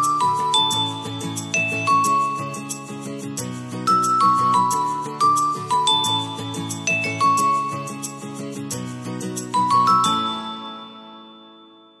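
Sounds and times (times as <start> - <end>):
jingle chord ringing: 0.0 - 12.0.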